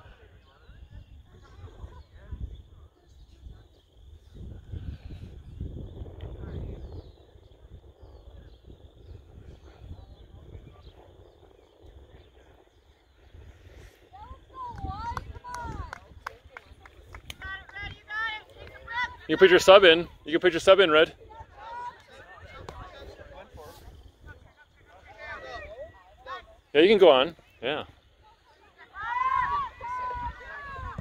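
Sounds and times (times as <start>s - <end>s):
wind buffeting microphone: 0.0s - 26.7s, 27.4s - 31.0s
distant shouting voices: 14.1s - 31.0s.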